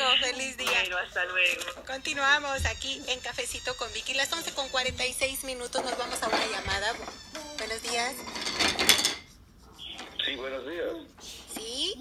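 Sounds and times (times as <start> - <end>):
clattering crackling noise: 1.5 - 10.3.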